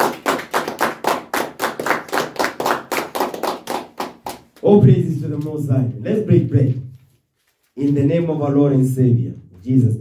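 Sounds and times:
man clapping hands: 0.0 - 4.6.

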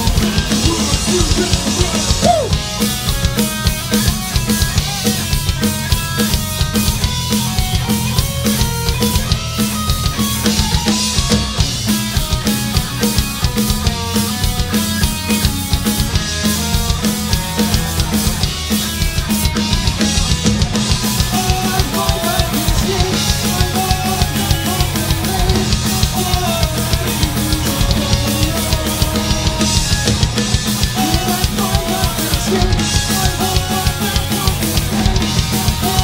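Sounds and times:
rock band playing: 0.0 - 36.0.

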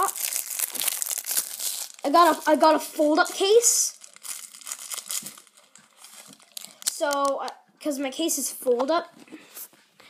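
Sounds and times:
plastic wrapper crinkling: 0.0 - 2.8, 3.4 - 7.6.

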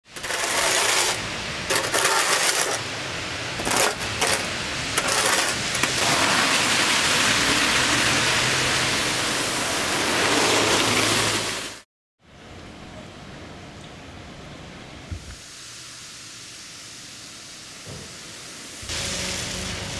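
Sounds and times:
metal shovel scraping concrete: 0.1 - 2.9, 3.6 - 6.7.

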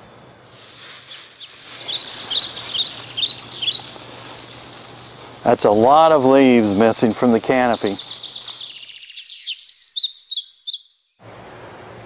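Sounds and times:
bird chirping: 0.9 - 11.2.

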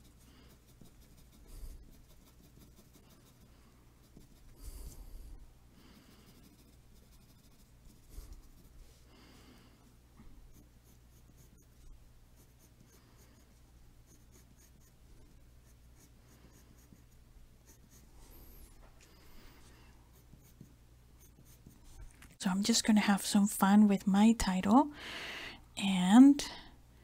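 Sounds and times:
pencil scratching on paper: 0.0 - 5.1, 5.8 - 9.0, 10.5 - 18.8, 20.1 - 22.1
low steady hum: 0.0 - 27.0.

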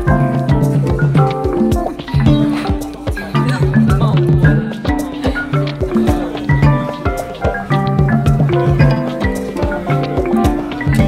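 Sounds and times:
music with steady beat and bass: 0.0 - 11.0.

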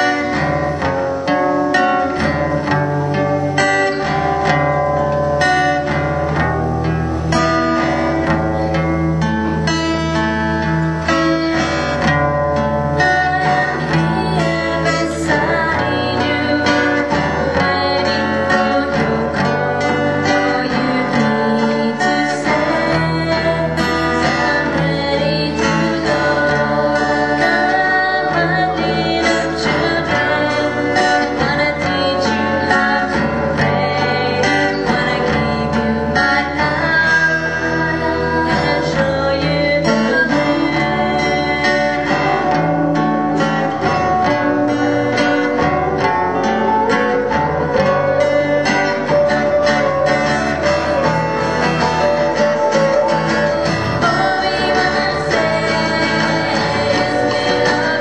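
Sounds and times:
live band playing worship song: 0.0 - 58.0
person singing: 0.0 - 58.0.

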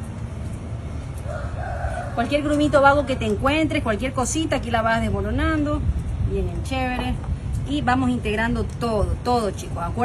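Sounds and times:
low steady rumble: 0.0 - 10.0
rooster crowing: 1.2 - 3.1.

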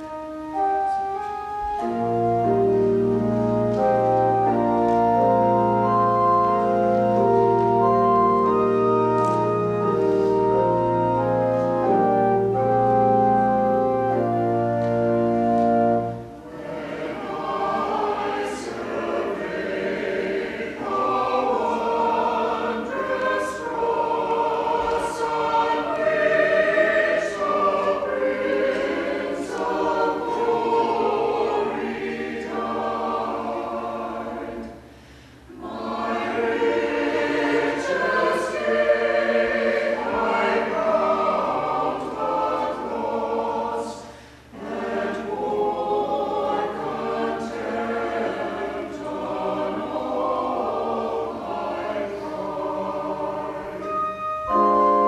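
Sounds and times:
mixed choir singing: 1.8 - 55.0.

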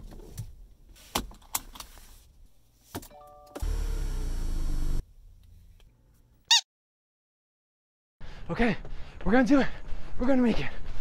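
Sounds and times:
steady motor sound: 3.6 - 5.0.

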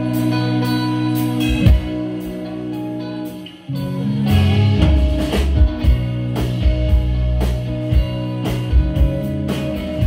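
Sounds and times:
bass guitar: 0.0 - 10.0
drum kit: 0.0 - 10.0
electric guitars: 0.0 - 10.0.

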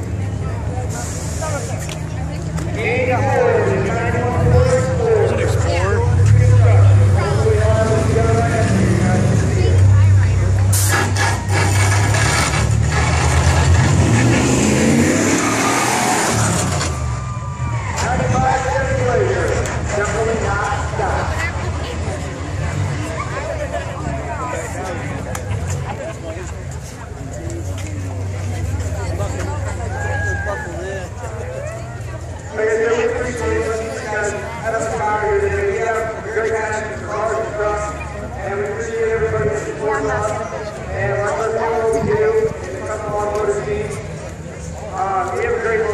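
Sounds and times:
car engines rumbling past: 0.0 - 45.9
crowd chatter: 0.0 - 45.9
engine crackles: 3.7 - 30.0.

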